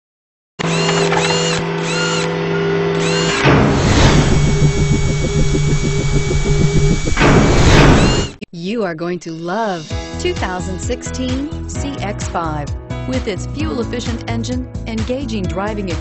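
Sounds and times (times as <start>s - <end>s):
drill-like buzzing pulse: 0.6s - 8.4s
steady drone: 0.8s - 8.4s
loud noisy swell: 1.8s - 8.4s
steady low tone: 2.4s - 8.4s.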